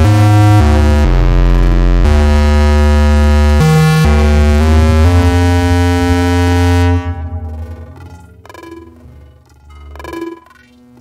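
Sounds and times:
heavy bass: 0.0s - 9.8s
sustained synthesizer chord: 0.0s - 10.3s.

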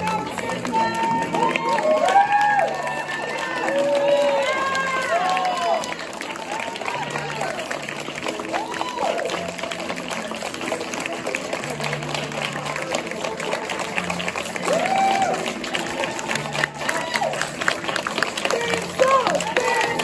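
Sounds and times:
audience applauding: 0.0s - 20.0s
whoops and cheering voices: 0.7s - 7.6s, 8.4s - 9.8s, 14.6s - 17.6s.

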